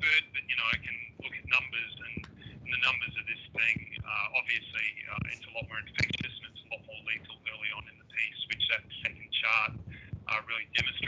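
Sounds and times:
man speaking over telephone line: 0:00.0 - 0:11.0.

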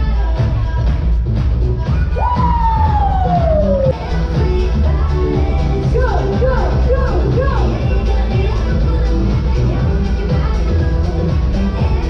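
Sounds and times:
show music with heavy bass: 0:00.0 - 0:12.0.

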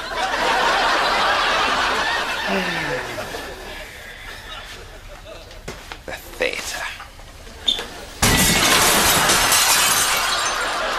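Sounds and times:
glass shattering: 0:08.2 - 0:10.8.

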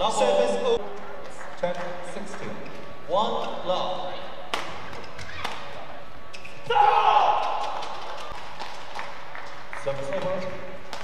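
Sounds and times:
person shouting: 0:06.7 - 0:07.4.

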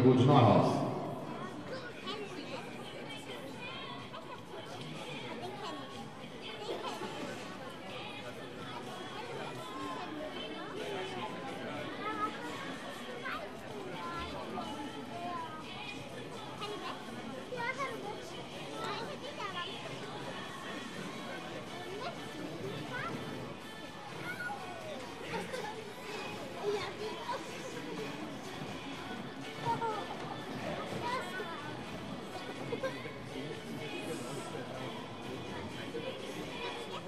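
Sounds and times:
faint chatter of voices: 0:00.0 - 0:37.0.

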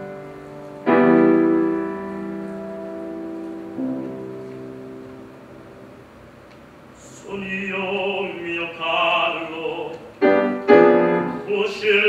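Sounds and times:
grand piano chords: 0:00.0 - 0:12.0.

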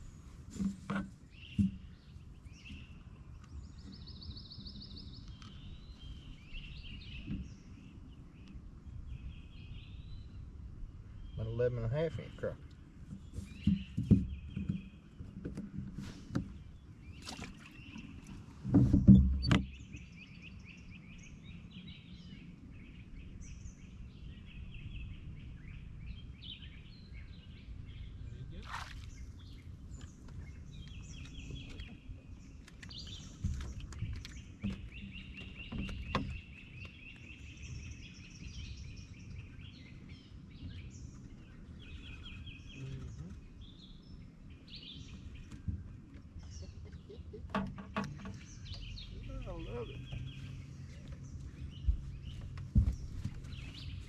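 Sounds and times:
thump and knock on boat: 0:00.6 - 0:02.0, 0:13.1 - 0:16.6, 0:18.6 - 0:19.8, 0:33.4 - 0:37.0, 0:47.5 - 0:48.6, 0:51.8 - 0:54.0
small birds trilling: 0:01.1 - 0:54.0.

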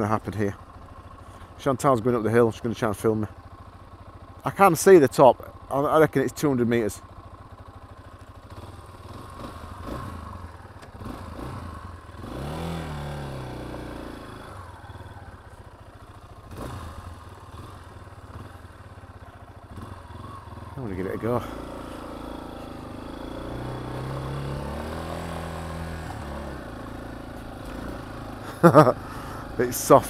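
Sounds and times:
motorcycle engine idling: 0:00.0 - 0:30.0
engine revving: 0:08.5 - 0:15.2, 0:16.4 - 0:18.7, 0:19.7 - 0:30.0.

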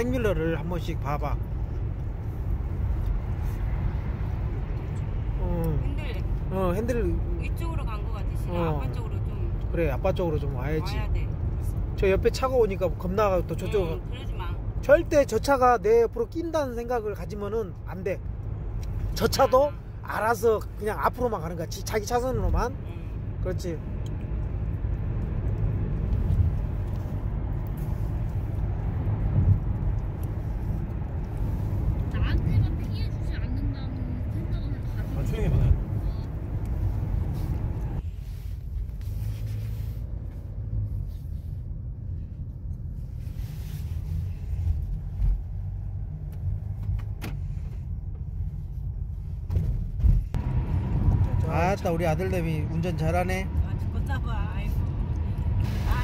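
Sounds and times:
road and engine rumble in car: 0:00.0 - 0:56.0.

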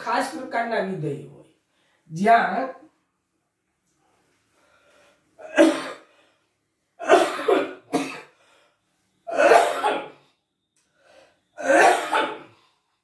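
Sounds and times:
man coughing: 0:07.0 - 0:08.3, 0:09.3 - 0:10.2, 0:11.6 - 0:12.5.

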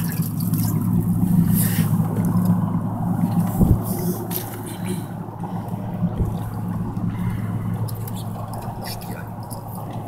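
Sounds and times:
boat engine idling: 0:00.0 - 0:10.0.

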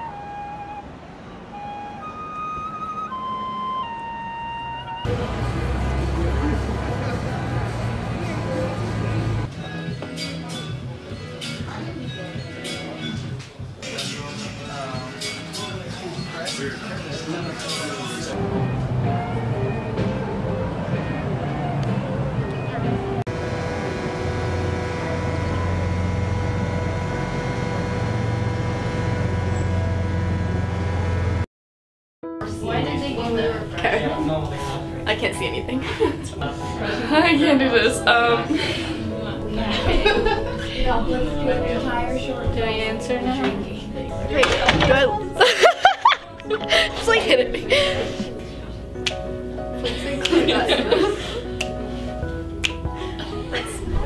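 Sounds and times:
flute melody: 0:00.0 - 0:05.3, 0:18.3 - 0:23.2
low traffic hum: 0:00.0 - 0:09.6, 0:18.0 - 0:31.4.

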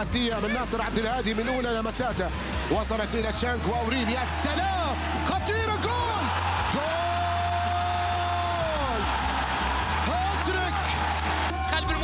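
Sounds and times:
commentator shouting: 0:00.0 - 0:09.2, 0:09.9 - 0:12.0
background music with bass line: 0:00.0 - 0:12.0.

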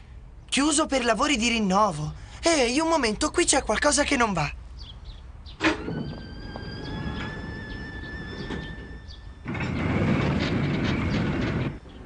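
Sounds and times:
high metallic squeal: 0:05.6 - 0:10.5
rolling rumble: 0:05.6 - 0:12.0.

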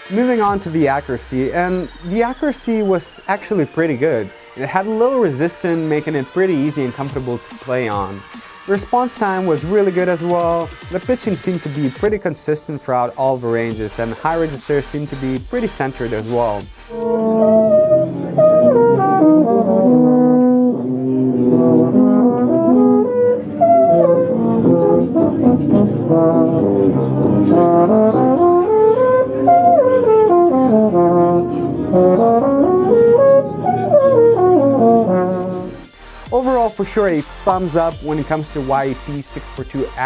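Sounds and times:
solo euphonium playing: 0:16.5 - 0:36.5.

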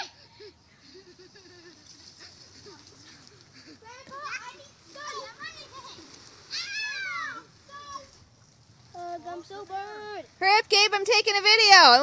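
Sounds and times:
children shrieking and yelling: 0:00.0 - 0:00.6, 0:02.6 - 0:08.3.

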